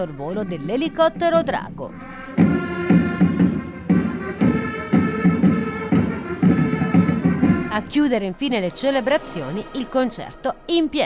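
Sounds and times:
long held trumpet notes: 0:00.0 - 0:08.0
steady drum beat: 0:00.4 - 0:08.2.

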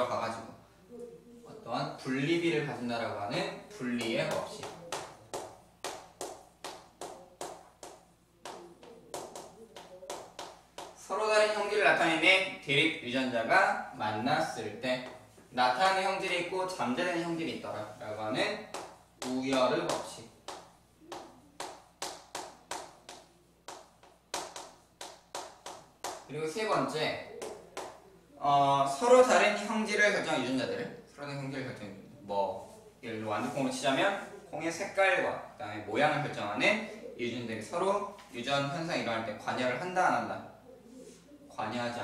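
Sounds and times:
chalk tapping and scratching: 0:03.9 - 0:11.1, 0:17.9 - 0:26.3, 0:27.4 - 0:28.0.

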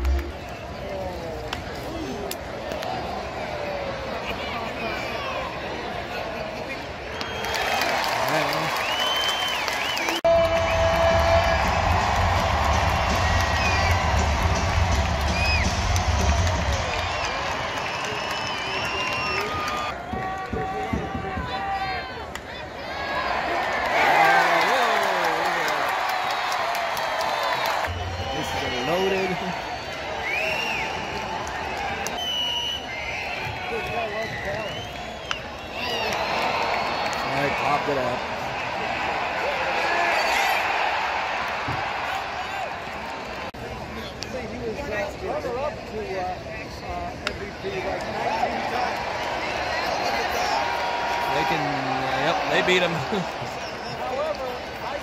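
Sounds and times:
crowd cheering: 0:00.0 - 0:43.7, 0:47.2 - 0:55.0
stadium music with heavy bass: 0:10.3 - 0:17.2
fans chattering: 0:27.9 - 0:40.2, 0:43.5 - 0:55.0.

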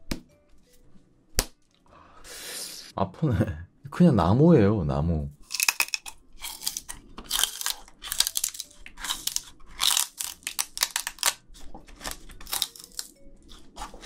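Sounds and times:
sugar cane crunching when chewed: 0:05.4 - 0:14.0.

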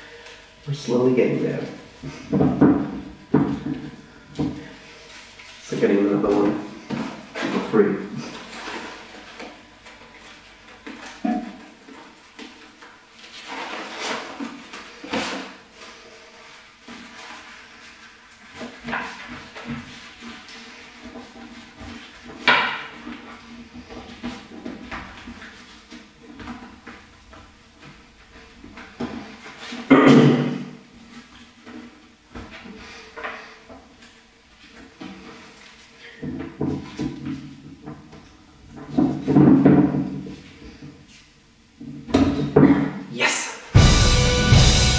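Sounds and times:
paper rustling and crinkling: 0:04.9 - 0:27.1.

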